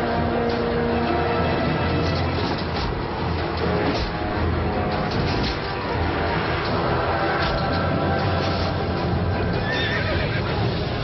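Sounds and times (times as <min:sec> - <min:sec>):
film score music: 0:00.0 - 0:11.0
horse whinnying: 0:09.4 - 0:10.6.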